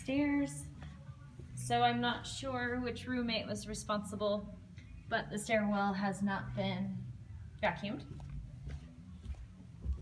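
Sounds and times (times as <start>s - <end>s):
footsteps on carpeted stairs: 8.0s - 10.0s.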